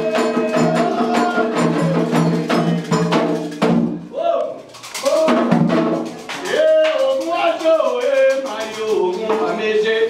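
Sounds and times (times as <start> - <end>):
people singing: 0.0 - 3.4
hand drums beaten fast: 0.0 - 10.0.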